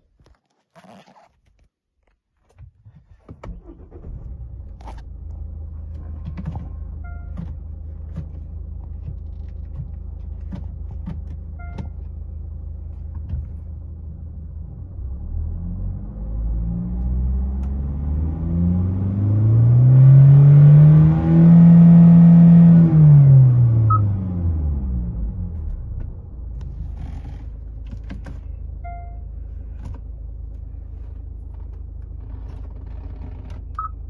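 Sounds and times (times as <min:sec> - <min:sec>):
diesel engine idling and revving: 0:03.5 - 0:34.0.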